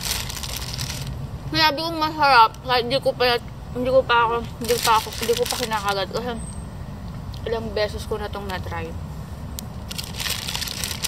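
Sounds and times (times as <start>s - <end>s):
paper wrapper crinkling: 0.0s - 1.2s, 4.6s - 6.0s, 9.8s - 11.0s.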